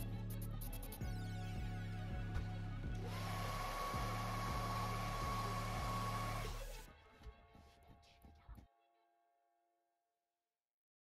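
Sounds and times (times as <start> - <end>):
background music with beat: 0.0 - 8.8.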